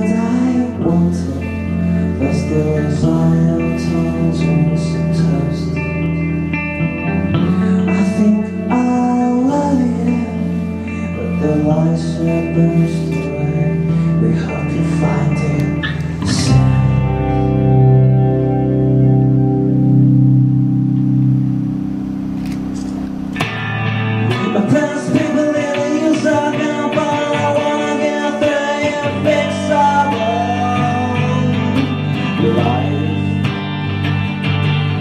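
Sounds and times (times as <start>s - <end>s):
bass: 0.0s - 35.0s
electric guitars sustained chords: 0.0s - 35.0s
held low organ chord: 16.3s - 24.5s.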